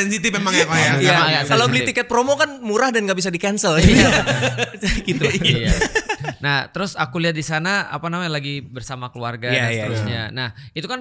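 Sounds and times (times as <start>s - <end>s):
men speaking: 0.0s - 11.0s
men laughing: 0.3s - 1.9s, 3.8s - 6.4s.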